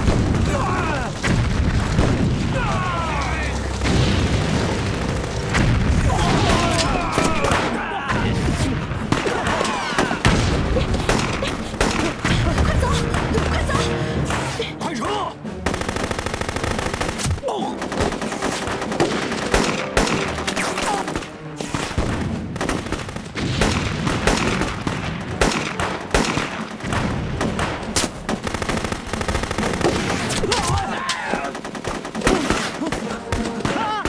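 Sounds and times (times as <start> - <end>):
dense gunfire exchange: 0.0 - 13.6, 15.6 - 34.0.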